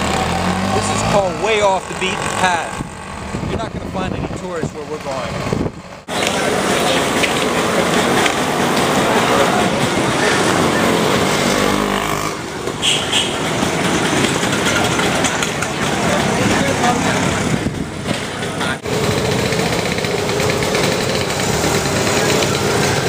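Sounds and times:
passing motor traffic: 0:00.0 - 0:23.0
people talking nearby: 0:15.1 - 0:18.8.

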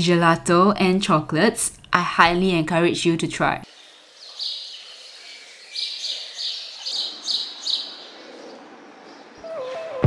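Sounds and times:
faint background noise: 0:00.0 - 0:10.0
bird chirping: 0:03.7 - 0:10.0.

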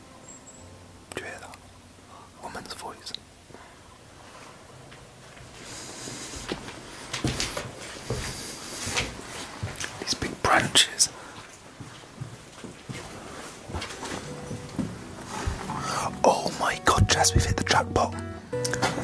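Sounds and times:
background music held notes: 0:00.0 - 0:02.1, 0:13.9 - 0:19.0
hushed whisper: 0:01.1 - 0:03.2, 0:10.0 - 0:11.2
footsteps crunching on rubble: 0:06.3 - 0:10.0, 0:11.3 - 0:17.8.

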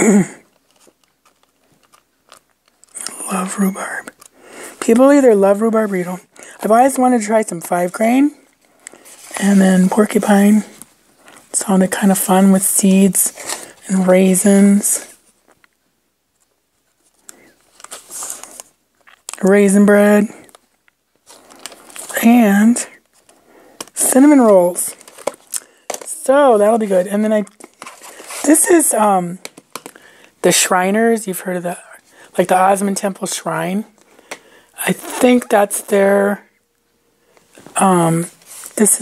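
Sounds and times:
paper pages crackling: 0:00.5 - 0:08.0, 0:08.6 - 0:11.6, 0:16.9 - 0:19.5, 0:20.3 - 0:28.6.

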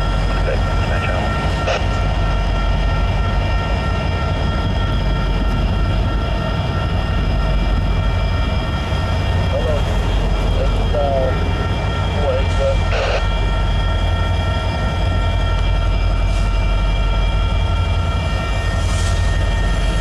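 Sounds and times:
diesel locomotive rumble: 0:00.0 - 0:20.0
locomotive whine: 0:00.0 - 0:20.0.

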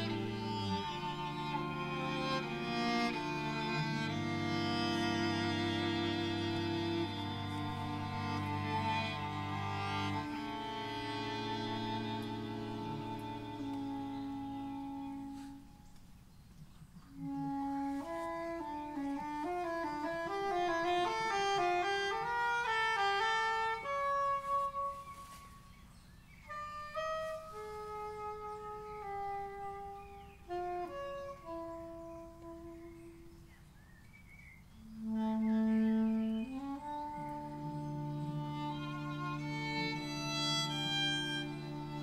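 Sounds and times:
woodwind solo: 0:00.0 - 0:15.9, 0:17.1 - 0:42.0.

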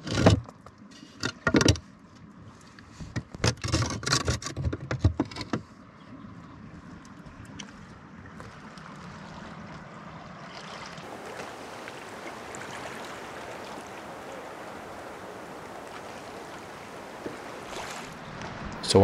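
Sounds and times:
faint rushing background noise: 0:11.1 - 0:19.0.

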